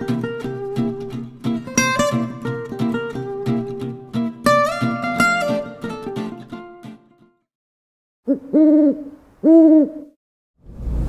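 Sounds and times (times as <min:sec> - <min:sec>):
owl-like hooting: 0:08.3 - 0:10.2.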